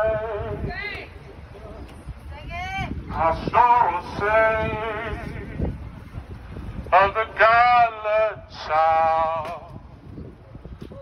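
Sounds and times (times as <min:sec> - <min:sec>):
man singing with vibrato: 0:00.0 - 0:00.7, 0:03.1 - 0:05.7, 0:06.9 - 0:09.9.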